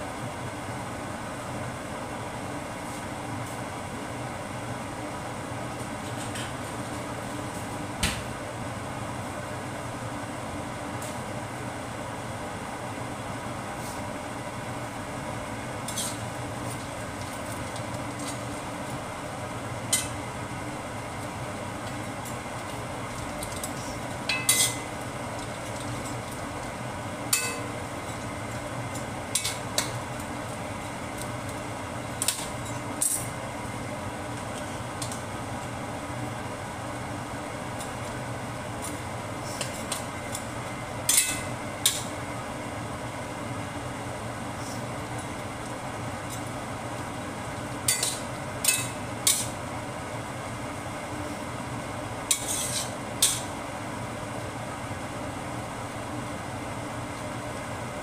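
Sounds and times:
steady hum: 0.0s - 58.0s
spatula scraping a metal wok: 15.9s - 16.2s, 52.3s - 53.4s.

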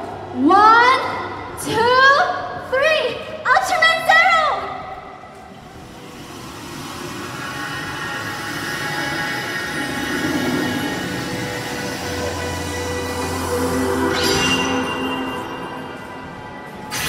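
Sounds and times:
low hum: 5.0s - 17.0s
music: 5.5s - 17.0s
steady electronic tones: 5.5s - 17.0s.

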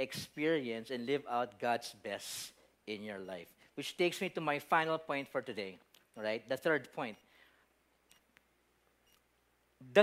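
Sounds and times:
man talking: 0.0s - 7.2s, 9.8s - 10.0s.

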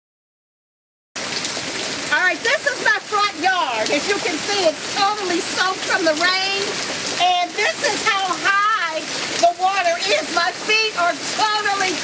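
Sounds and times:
heavy rain pouring: 1.2s - 12.0s
woman's voice: 2.1s - 12.0s.

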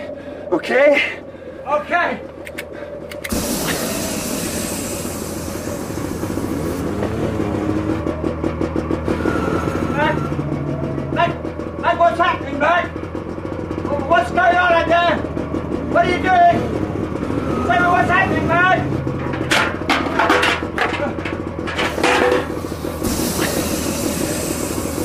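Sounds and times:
low steady flame: 3.2s - 6.8s
gas torch whoosh and hiss: 3.2s - 7.0s, 21.9s - 25.0s.

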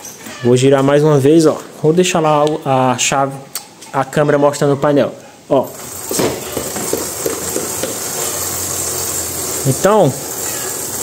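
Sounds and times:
motorcycle wheel chain hissing: 5.6s - 11.0s.

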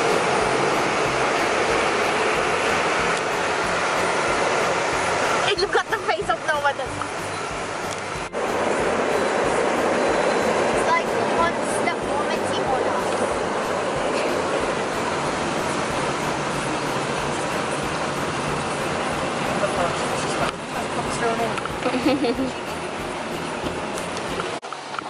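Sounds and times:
water spraying on car: 0.0s - 25.0s.

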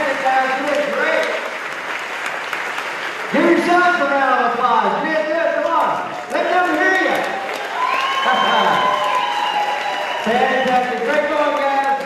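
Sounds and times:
crowd applauding and cheering: 0.0s - 5.0s, 6.0s - 12.0s.

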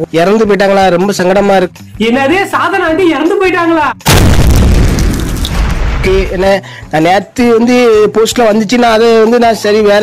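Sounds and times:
loud deep boom: 4.0s - 6.3s.

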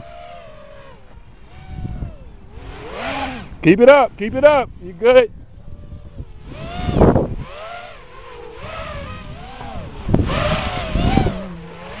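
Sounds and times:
quadcopter motors whining: 0.0s - 12.0s.

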